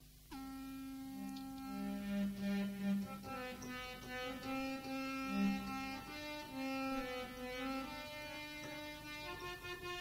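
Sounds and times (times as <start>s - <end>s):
held instrument note: 0.3s - 10.0s
lower held note: 0.3s - 10.0s.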